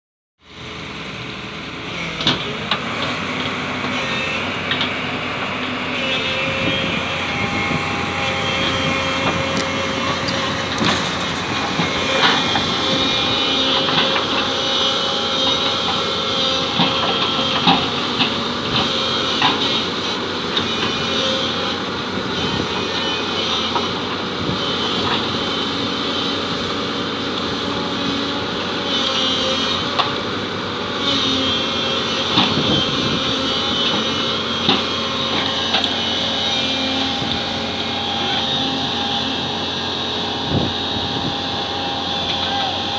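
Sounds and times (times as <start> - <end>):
excavator diesel engine running: 0.4 - 42.9.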